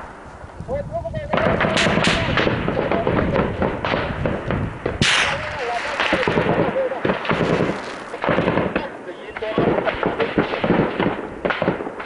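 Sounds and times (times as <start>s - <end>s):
small-arms gunfire: 1.3s - 12.0s.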